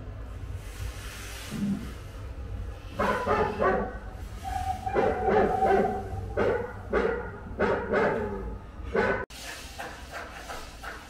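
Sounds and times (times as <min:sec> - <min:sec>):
recorded dog barking: 0:03.0 - 0:04.1, 0:04.9 - 0:09.2.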